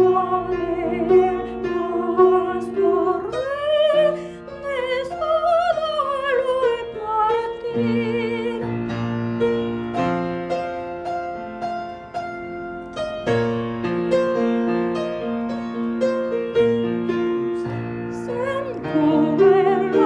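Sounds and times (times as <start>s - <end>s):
piano repeated chords and melody: 0.0s - 20.0s
person singing: 17.7s - 20.0s.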